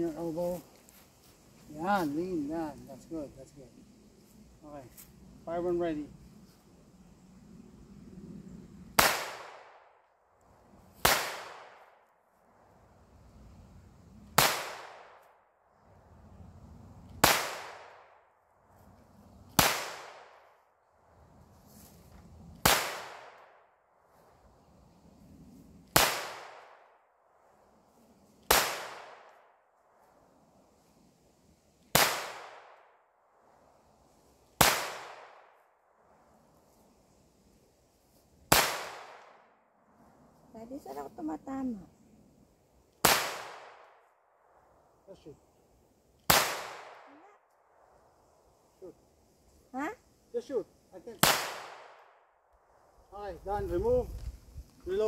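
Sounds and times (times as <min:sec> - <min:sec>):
pistol shots with echo: 0:11.0 - 0:12.0, 0:14.4 - 0:15.2, 0:25.9 - 0:26.9, 0:51.2 - 0:52.1.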